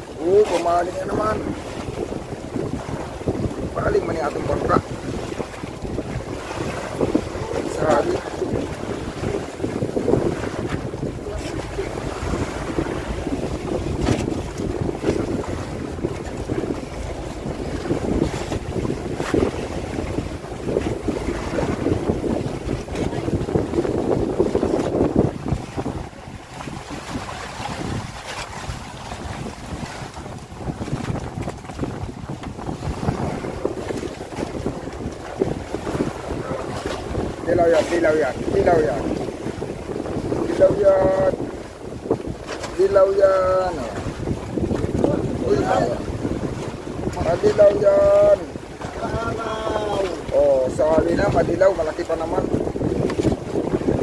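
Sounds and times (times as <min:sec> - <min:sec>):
sea water sloshing: 0:00.0 - 0:54.0
wind buffeting microphone: 0:00.0 - 0:54.0.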